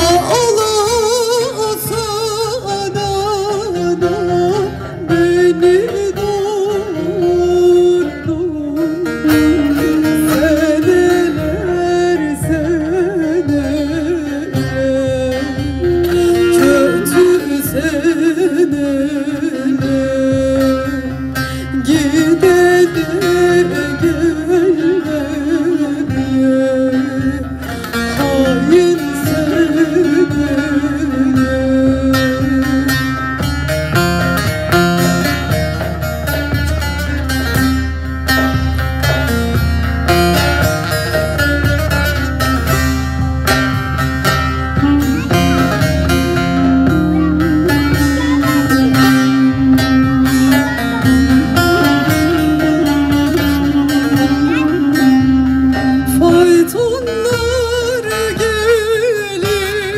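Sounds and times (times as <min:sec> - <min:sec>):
drum: 0:00.0 - 0:59.9
plucked long-necked lutes: 0:00.0 - 0:59.9
held wavering melody line: 0:44.4 - 0:58.2.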